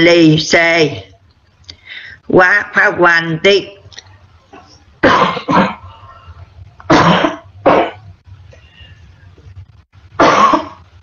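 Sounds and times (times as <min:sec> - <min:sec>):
person coughing: 0:05.0 - 0:05.9, 0:06.9 - 0:08.1, 0:10.2 - 0:10.8.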